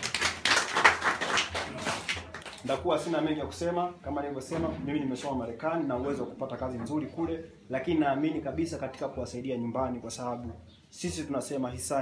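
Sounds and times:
small group clapping: 0.0s - 2.8s.

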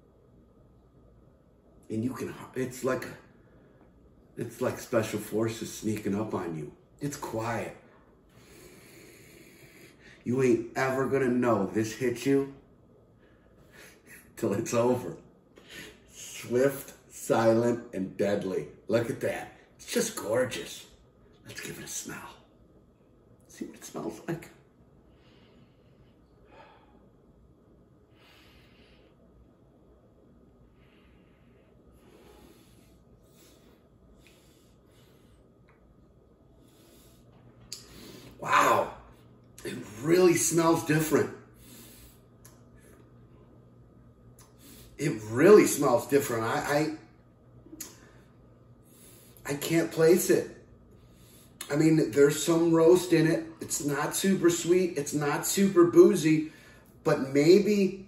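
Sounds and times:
man breathing through nose: 8.3s - 10.2s, 30.7s - 35.6s, 36.5s - 38.4s, 41.5s - 42.4s, 48.8s - 49.4s, 50.9s - 51.6s.

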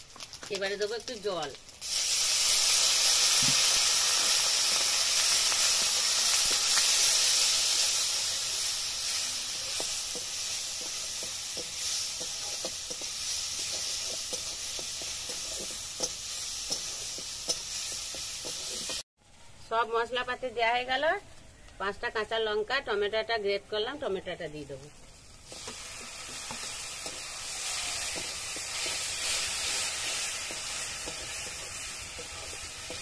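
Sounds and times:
loud sizzle and steam hiss: 0.0s - 19.1s, 24.9s - 33.0s
spatula scraping and tapping pan: 9.7s - 19.0s, 25.5s - 33.0s.

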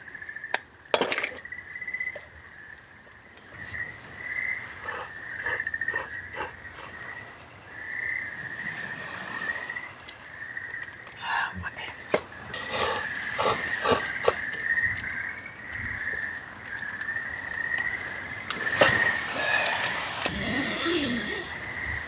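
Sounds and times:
night insects chirring: 0.0s - 22.0s
person slurping noodles: 12.6s - 14.4s, 19.3s - 21.9s.

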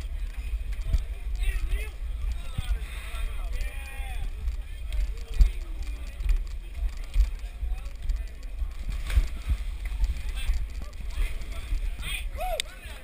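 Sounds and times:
distant crowd voices: 0.0s - 13.0s
wind buffeting microphone: 0.0s - 13.0s.

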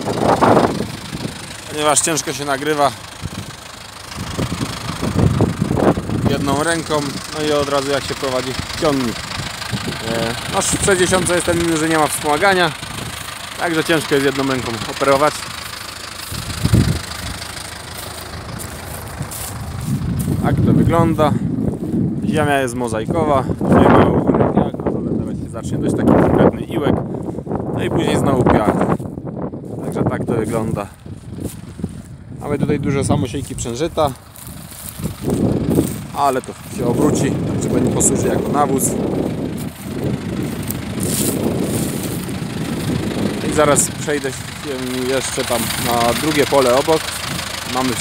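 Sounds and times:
wind buffeting microphone: 0.0s - 13.5s, 14.6s - 48.0s
tractor diesel engine running: 0.0s - 48.0s.

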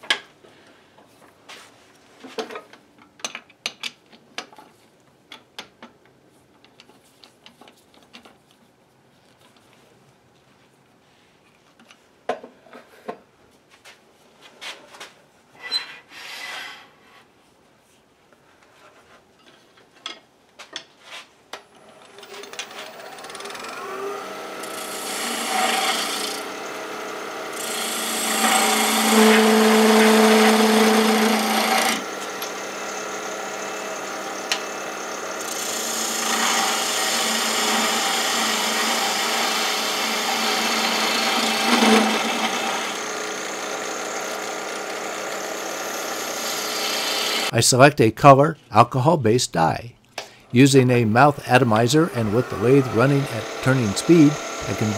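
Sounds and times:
chisel scraping wood on lathe: 22.3s - 47.5s, 52.0s - 54.9s.

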